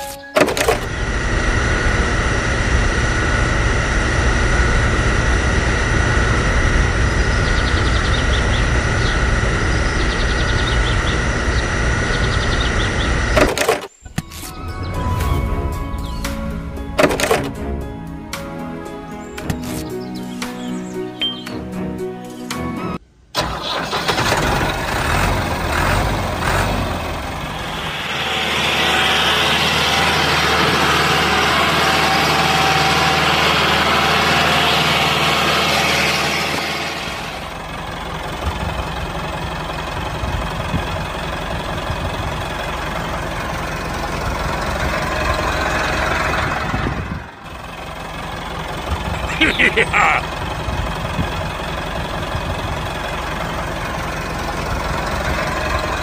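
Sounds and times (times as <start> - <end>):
tractor engine running: 0.0 - 56.0.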